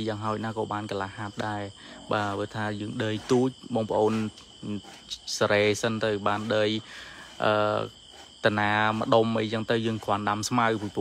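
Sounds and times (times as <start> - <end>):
man speaking: 0.0 - 6.8, 7.4 - 11.0
crickets chirping: 0.0 - 11.0.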